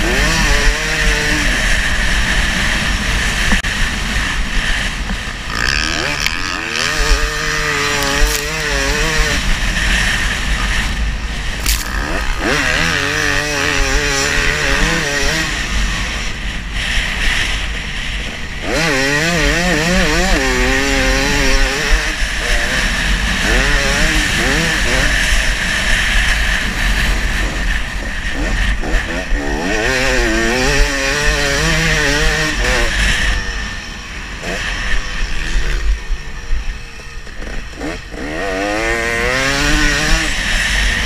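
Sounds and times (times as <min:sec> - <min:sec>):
dirt bike engine revving: 0:00.0 - 0:41.0.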